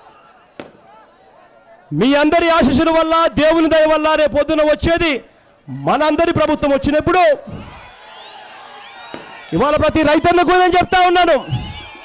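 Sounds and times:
murmur of outdoor crowd: 0.0 - 4.0, 5.1 - 10.0
sharp crack: 0.6 - 0.9.

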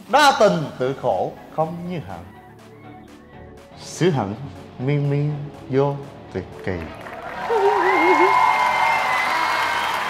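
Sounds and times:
crowd cheering and applauding: 6.6 - 10.0.

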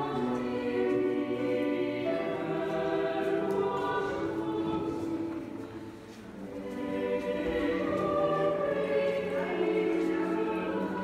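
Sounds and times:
choir singing sustained chords: 0.0 - 11.0.

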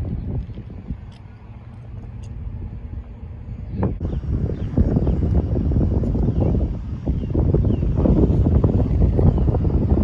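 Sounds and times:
distant vehicle engine hum: 0.0 - 10.0
low outdoor rumble: 0.0 - 10.0.

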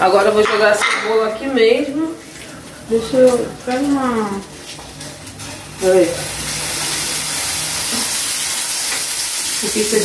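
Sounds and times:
food sizzling in hot oil: 0.0 - 10.0.

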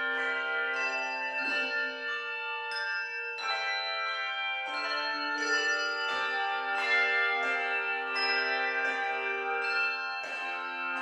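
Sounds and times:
handbell chords ringing: 0.0 - 11.0.

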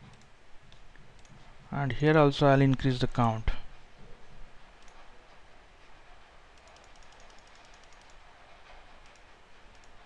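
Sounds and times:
computer mouse clicks: 0.0 - 1.4, 4.8 - 5.0, 6.6 - 8.2, 9.0 - 10.0
low steady hiss: 0.0 - 10.0.

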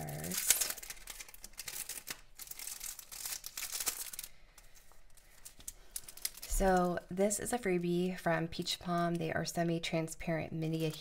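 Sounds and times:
plastic packaging crinkling: 0.0 - 7.2.

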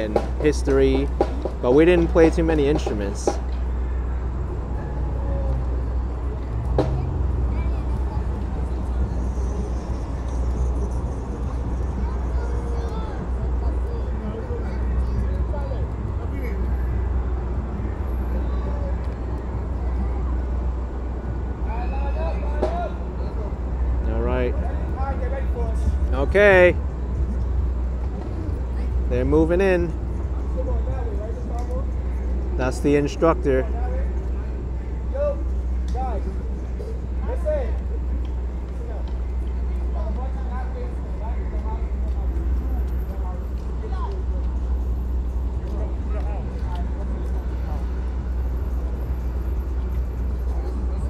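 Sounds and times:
people talking: 0.0 - 3.4, 6.8 - 16.9, 21.6 - 26.8
steady low rumble: 0.0 - 51.0.

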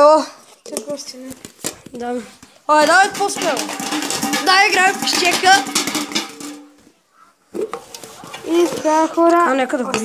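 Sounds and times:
cup handling and rustling: 0.4 - 10.0.

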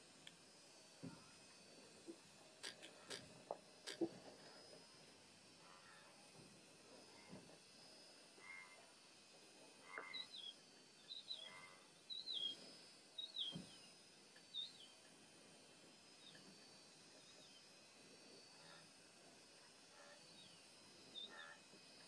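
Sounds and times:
faint bird chirps: 9.8 - 12.6.

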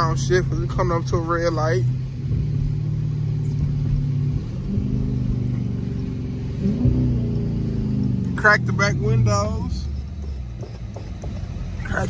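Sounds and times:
car engine downshifting: 0.0 - 12.0
engine rev blip: 6.6 - 12.0.

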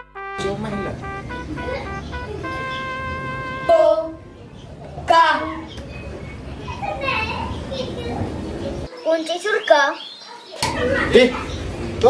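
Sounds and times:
children talking: 0.4 - 12.0.

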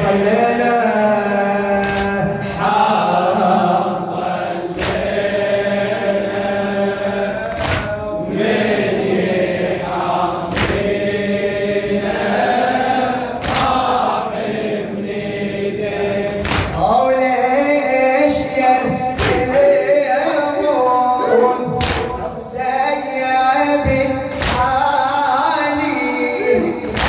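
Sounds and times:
man chanting into a microphone: 0.0 - 4.1, 7.4 - 8.4, 16.2 - 27.0
loud beat struck in time: 18.9 - 19.6.

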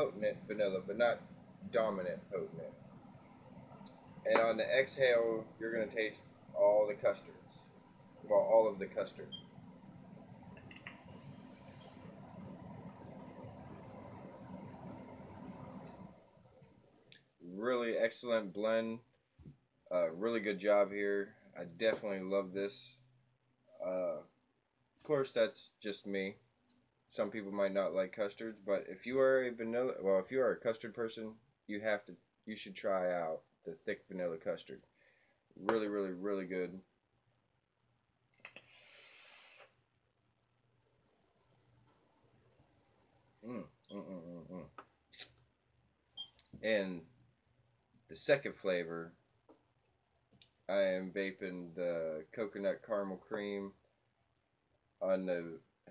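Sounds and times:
vape inhale hiss: 11.0 - 12.2, 38.6 - 39.8
person exhaling vapour: 38.6 - 39.7.

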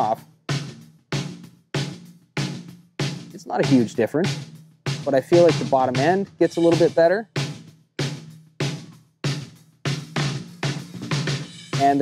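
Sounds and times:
snare drum hits: 4.9 - 12.0.

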